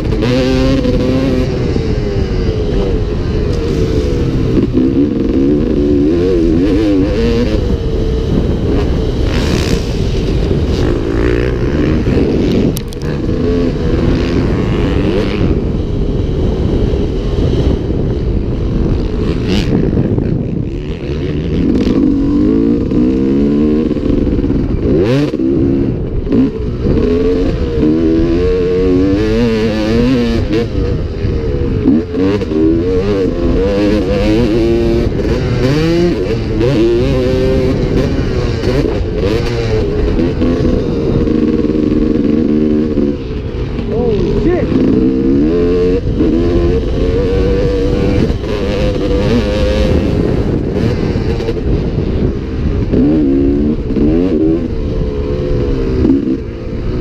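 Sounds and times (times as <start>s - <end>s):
motocross engine revving: 0.0s - 57.0s.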